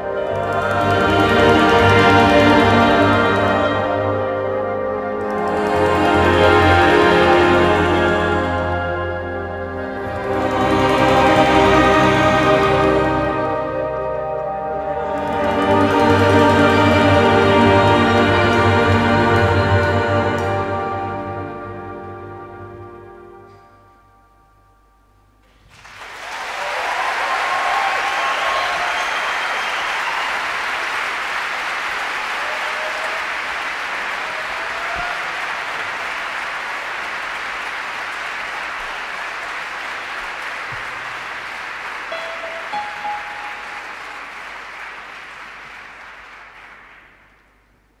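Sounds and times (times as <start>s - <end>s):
audience applauding: 0.0s - 4.2s, 14.9s - 20.6s, 25.6s - 47.7s
crowd calling out: 26.3s - 31.0s, 32.3s - 36.4s.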